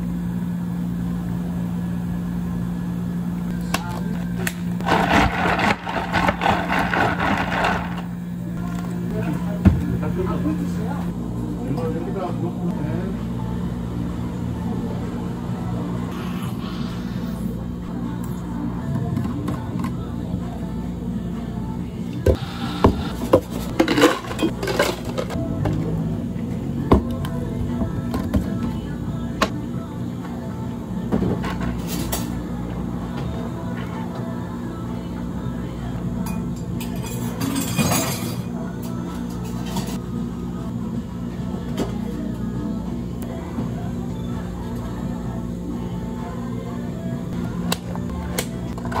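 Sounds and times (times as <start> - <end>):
low machine hum: 0.0 - 49.0.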